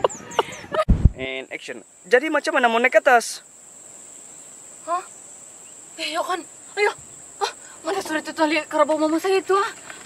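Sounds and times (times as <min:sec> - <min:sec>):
high-pitched insect drone: 0:01.5 - 0:10.0.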